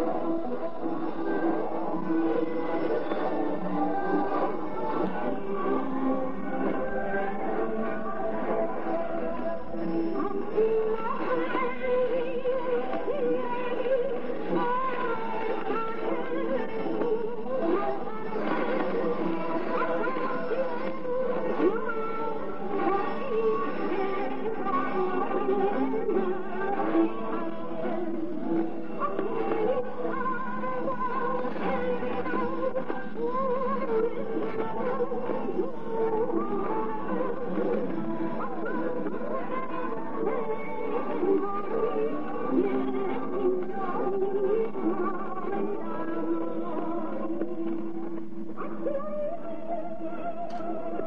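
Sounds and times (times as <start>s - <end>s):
muffled music on shortwave radio: 0.0s - 51.0s.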